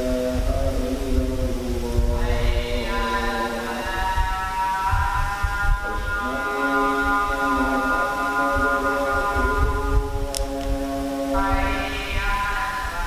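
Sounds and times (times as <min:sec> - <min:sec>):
person chanting melodically: 0:00.0 - 0:13.0
uneven low rumble: 0:00.0 - 0:13.0.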